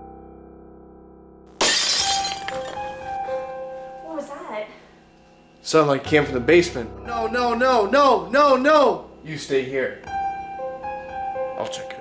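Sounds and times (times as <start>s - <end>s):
held music chord: 5.8s - 12.0s.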